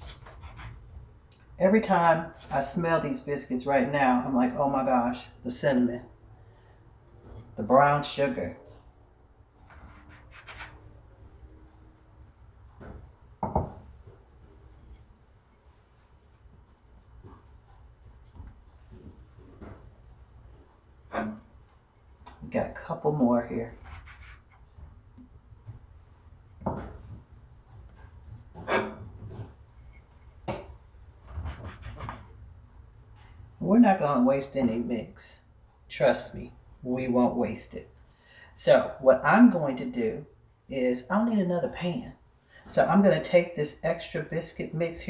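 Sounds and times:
hands rubbing dough: 9.6s - 11.1s, 23.7s - 25.0s, 27.0s - 32.4s
knocks on countertop: 13.4s - 13.8s.

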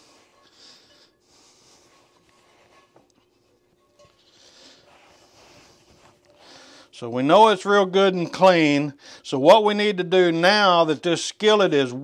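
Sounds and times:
towel wiping a skillet: 0.0s - 6.2s.

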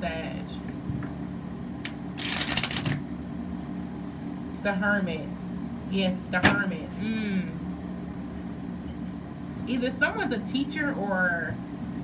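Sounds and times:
cards being shuffled: 2.2s - 3.0s.

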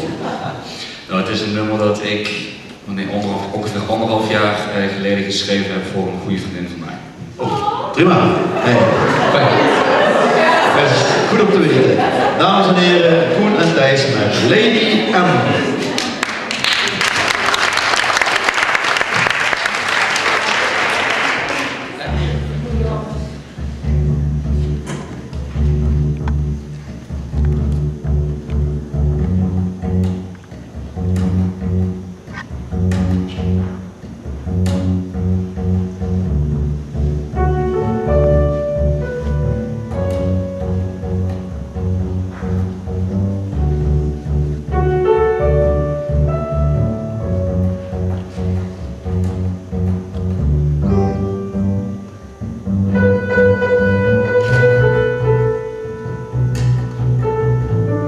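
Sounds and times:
double bass playing low notes: 0.0s - 7.2s, 8.0s - 15.7s, 22.0s - 58.0s.

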